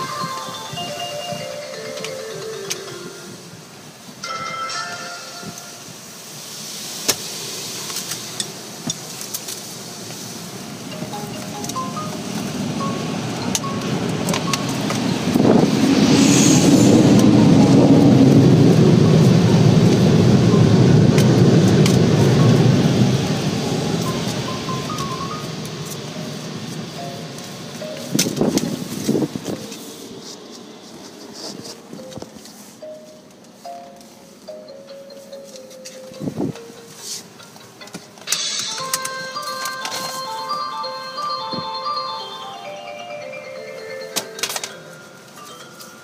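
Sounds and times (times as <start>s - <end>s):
car wash air dryers blowing: 0.0s - 46.0s.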